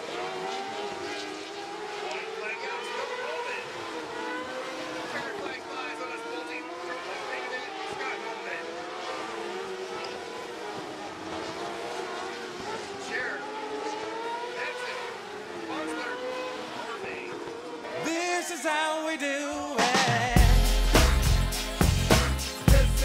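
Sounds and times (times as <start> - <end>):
racing car engines passing: 0.0 - 20.4.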